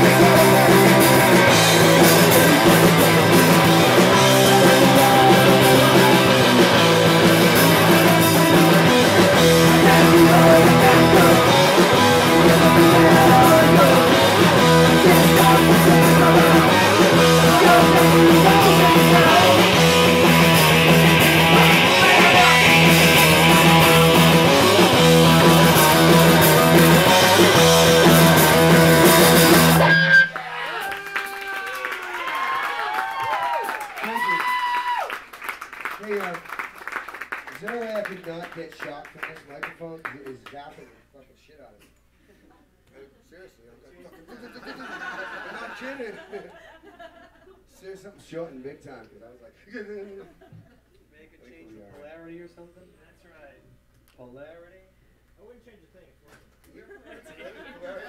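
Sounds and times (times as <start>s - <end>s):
live rock band playing: 0.0s - 30.5s.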